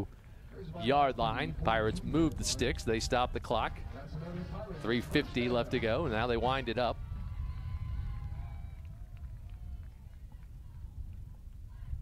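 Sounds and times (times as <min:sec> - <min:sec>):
low stadium rumble: 0:00.0 - 0:12.0
distant crowd voices: 0:00.4 - 0:12.0.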